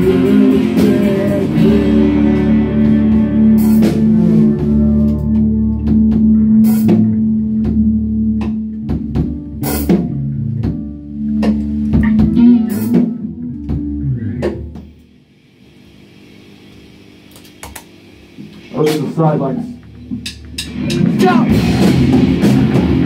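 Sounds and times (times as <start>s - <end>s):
rock band playing: 0.0s - 15.0s, 18.8s - 23.0s
drum hits: 8.4s - 15.0s, 20.0s - 23.0s
amplifier hiss: 14.5s - 20.7s.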